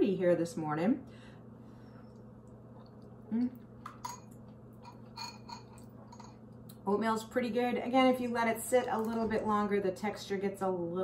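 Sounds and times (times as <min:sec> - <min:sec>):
person humming: 0:03.3 - 0:03.6.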